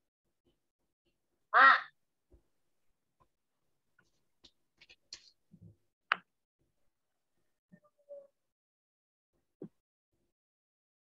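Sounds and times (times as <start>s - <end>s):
person saying a syllable: 1.6s - 1.9s.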